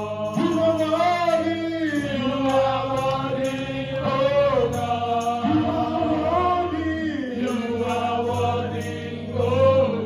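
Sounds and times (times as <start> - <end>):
women singing gospel song: 0.0 - 1.1, 2.0 - 10.0.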